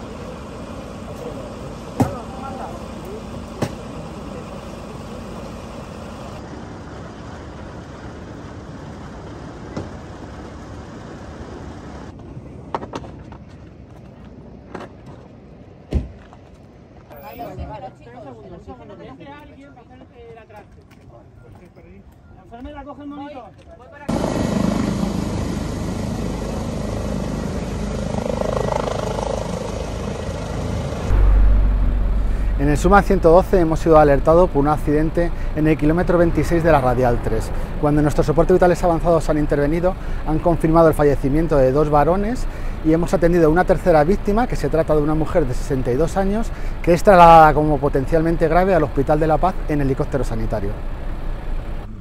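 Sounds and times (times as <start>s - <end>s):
helicopter hovering: 0.0s - 12.0s, 24.1s - 52.0s
vehicle and road noise: 0.0s - 52.0s.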